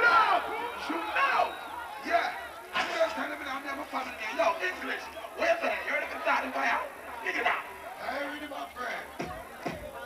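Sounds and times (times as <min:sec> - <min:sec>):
excited shouting voices: 0:00.0 - 0:02.9
crowd noise: 0:00.0 - 0:10.0
faint repeating bass beat: 0:09.0 - 0:10.0.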